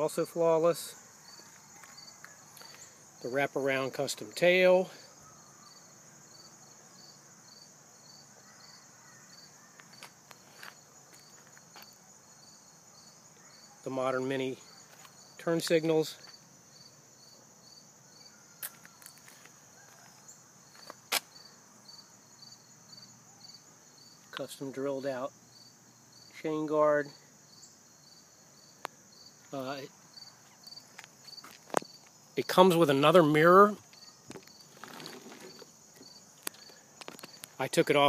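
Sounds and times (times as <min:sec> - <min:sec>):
insects chirping: 0:00.0 - 0:38.0.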